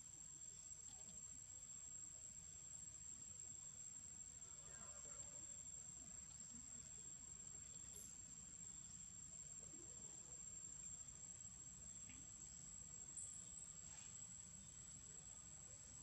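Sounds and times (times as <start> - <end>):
cricket trill: 0.1 - 16.0.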